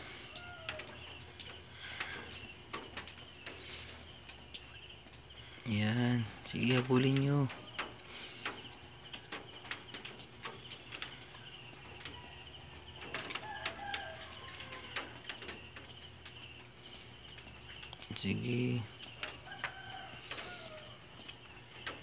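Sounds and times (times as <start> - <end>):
insect trill: 0.0 - 22.0.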